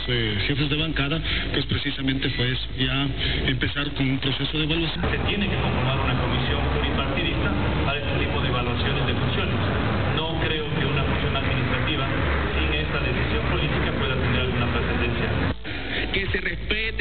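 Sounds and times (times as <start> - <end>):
man speaking into microphone: 0.0 - 17.0.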